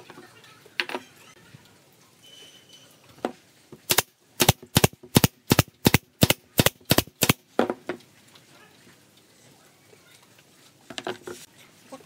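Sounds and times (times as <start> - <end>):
nail gun firing: 3.9 - 7.4.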